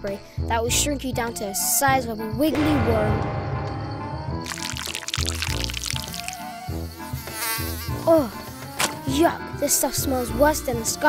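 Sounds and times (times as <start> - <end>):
background music: 0.8 - 11.0.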